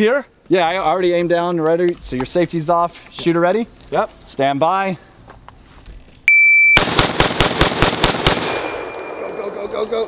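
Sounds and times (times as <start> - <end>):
shot timer beep: 6.3 - 6.8
rifle firing rapid shots: 6.8 - 8.9.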